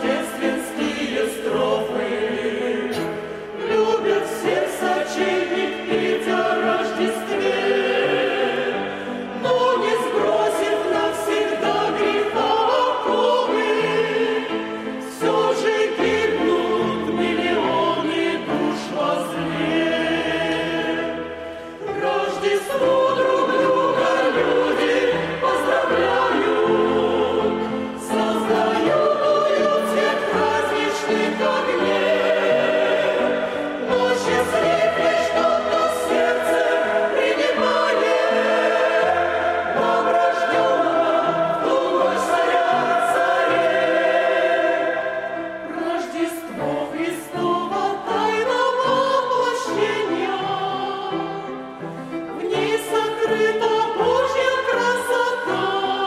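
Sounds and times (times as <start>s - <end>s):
choir singing a hymn: 0.0s - 56.0s.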